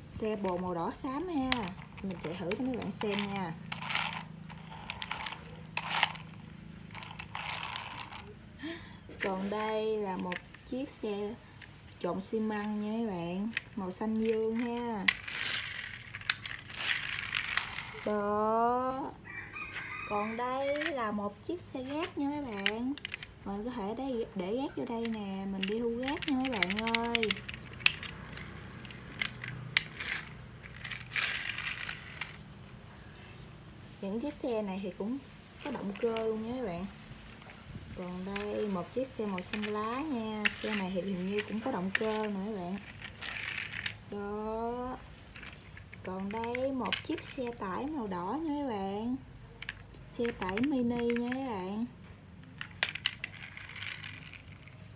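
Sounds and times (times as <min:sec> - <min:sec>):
toy truck rattling on concrete: 0:00.0 - 0:33.4, 0:34.1 - 0:54.9
toy truck scraping: 0:00.1 - 0:19.1, 0:19.7 - 0:33.4, 0:34.2 - 0:54.9
sharp plastic clicks: 0:24.8 - 0:32.5.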